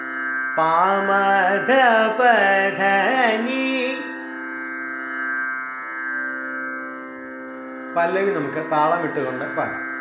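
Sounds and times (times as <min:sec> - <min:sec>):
tanpura drone: 0:00.0 - 0:10.0.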